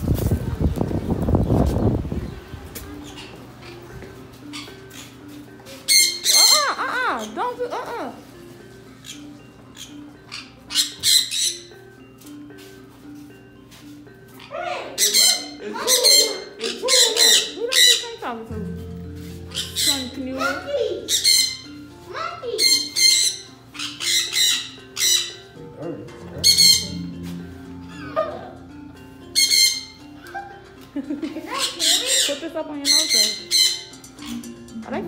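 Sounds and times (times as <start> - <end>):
background music: 0.0 - 35.0
parrots screeching: 4.5 - 5.1, 5.8 - 7.6, 9.0 - 11.8, 14.3 - 18.2, 19.5 - 21.9, 22.6 - 25.6, 26.4 - 28.6, 29.3 - 30.6, 31.5 - 34.5.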